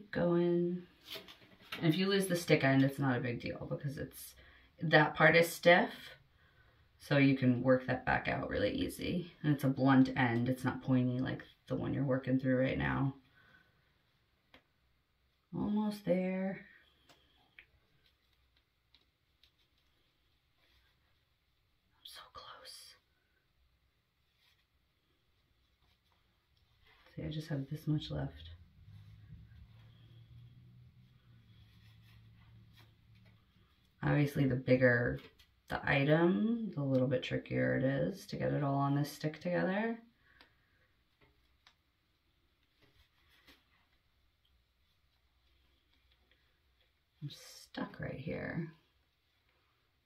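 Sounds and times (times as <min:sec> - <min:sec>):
person whispering: 0:22.0 - 0:23.3.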